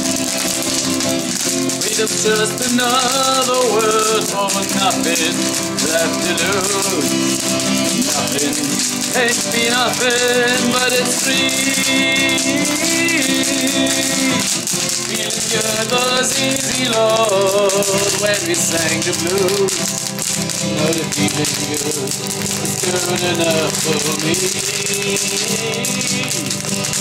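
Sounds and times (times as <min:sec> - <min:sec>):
acoustic guitar strumming: 0:00.0 - 0:27.0
person singing: 0:01.4 - 0:27.0.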